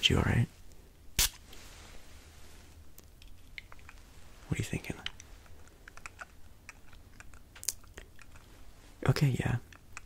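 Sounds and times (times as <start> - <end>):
low steady hum: 0.0 - 10.0
small clicks and ticks: 5.0 - 8.5, 9.7 - 10.0.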